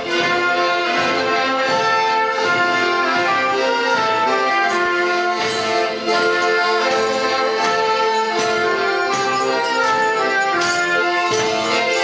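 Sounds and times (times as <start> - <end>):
accordion: 0.0 - 12.0
trumpet: 0.0 - 12.0
violin: 0.0 - 12.0.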